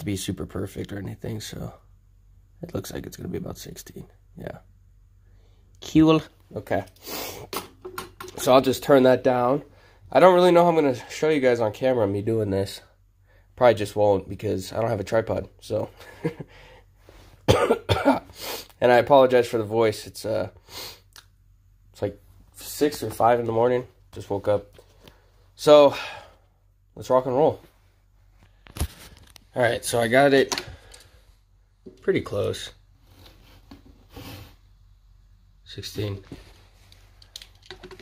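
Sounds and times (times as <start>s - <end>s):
man speaking: 0.0s - 1.8s, 2.6s - 4.7s, 5.8s - 7.0s, 8.4s - 12.9s, 22.0s - 24.7s, 25.6s - 26.2s, 27.0s - 27.7s, 29.5s - 30.6s, 31.9s - 32.8s, 35.6s - 36.4s
faint steady hum: 0.0s - 38.0s
man coughing: 17.5s - 18.4s.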